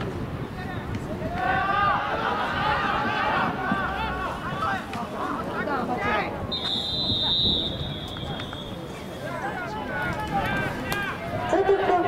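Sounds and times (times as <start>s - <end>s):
people shouting and calling out: 0.5s - 12.0s
group of voices: 0.6s - 12.0s.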